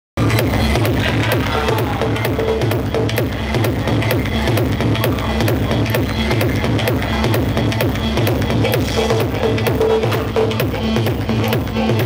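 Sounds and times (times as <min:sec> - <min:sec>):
loud house music: 0:00.2 - 0:12.0.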